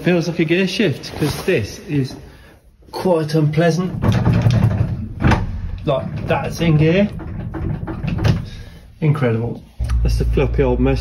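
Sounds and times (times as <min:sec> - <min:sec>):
low steady hum: 0:09.8 - 0:11.0.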